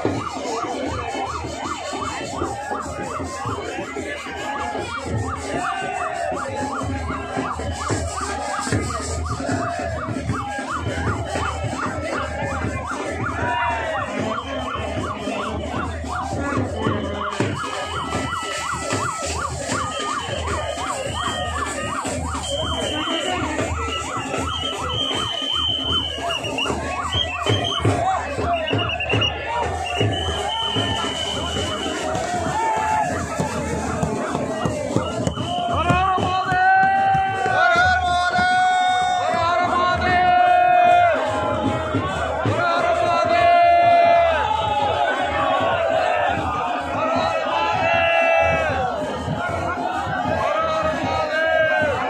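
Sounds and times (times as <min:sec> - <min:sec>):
electronic siren yelping: 0:00.0 - 0:36.2
high whistle-like tones: 0:14.3 - 0:36.0.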